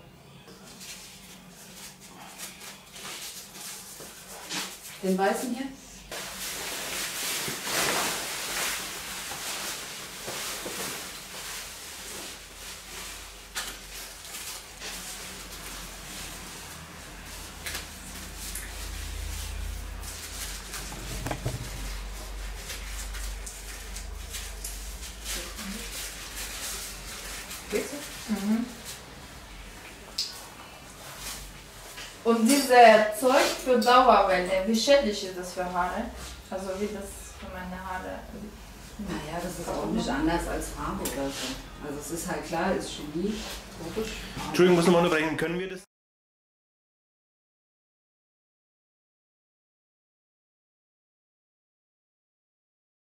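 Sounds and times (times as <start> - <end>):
hair rustling: 19.3 - 29.0.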